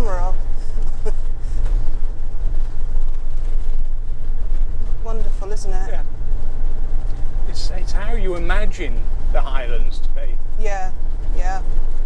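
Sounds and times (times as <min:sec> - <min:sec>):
engine drone: 0:00.0 - 0:12.0
road rumble: 0:00.0 - 0:12.0.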